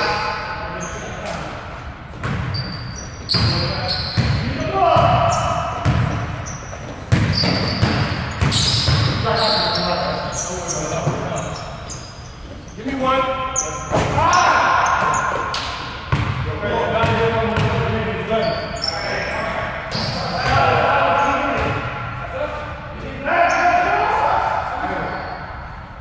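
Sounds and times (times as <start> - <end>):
sneakers squeaking: 0.0 - 26.0
basketball bouncing on wooden floor: 5.0 - 9.3
players shouting: 13.0 - 17.3.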